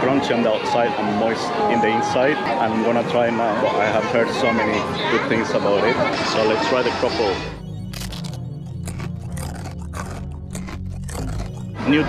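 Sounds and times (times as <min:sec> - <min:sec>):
background music: 0:05.6 - 0:12.0
crunchy pastry chewing: 0:07.8 - 0:11.8.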